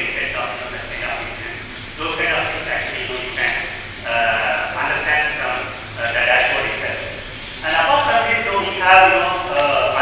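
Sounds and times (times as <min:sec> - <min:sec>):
man speaking through a microphone: 0:00.0 - 0:10.0.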